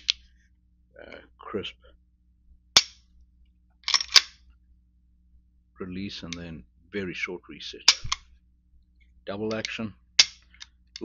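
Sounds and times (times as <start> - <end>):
pistol slide clicks: 3.9 - 4.4, 9.5 - 11.0
pistol hammer click: 9.5 - 11.0.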